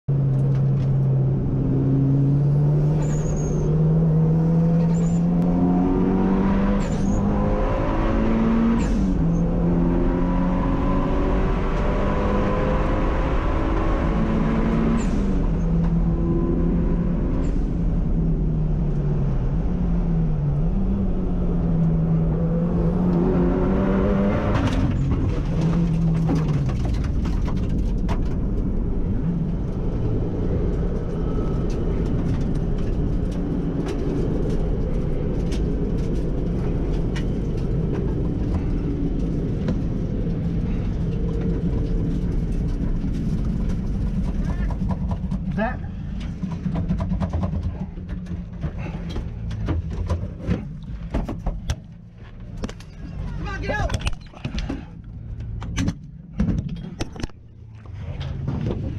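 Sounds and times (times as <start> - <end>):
car engine revving: 1.0 - 26.9
engine clatter: 24.4 - 58.9.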